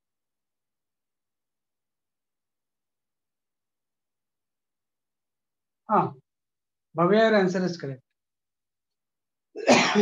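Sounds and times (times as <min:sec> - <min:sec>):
man coughing: 0:09.6 - 0:10.0.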